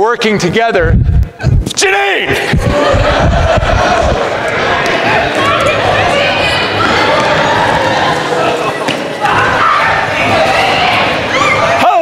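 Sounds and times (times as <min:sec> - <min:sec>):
adults laughing and chattering: 0:02.2 - 0:12.0.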